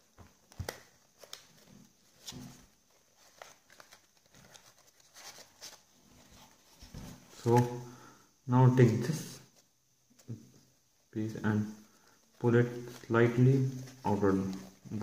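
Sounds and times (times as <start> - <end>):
paper crinkling and clicking: 3.2 - 5.8.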